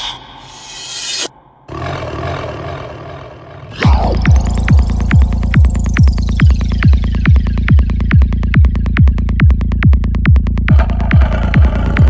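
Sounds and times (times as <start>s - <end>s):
steady low drone: 0.0s - 12.0s
gritty roar-like growl: 1.7s - 4.7s.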